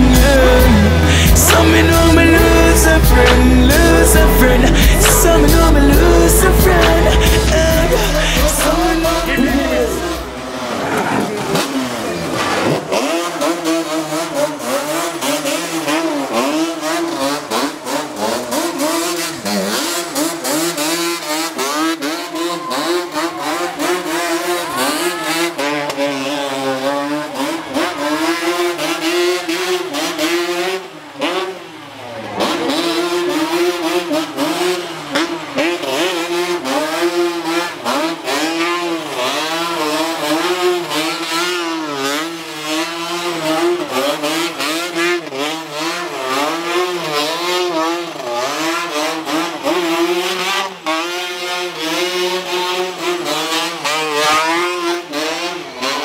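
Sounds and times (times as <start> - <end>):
quad bike engine revving: 0.0 - 56.0.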